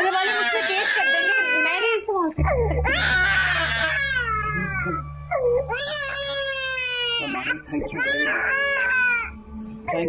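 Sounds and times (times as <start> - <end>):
infant crying: 0.0 - 10.0.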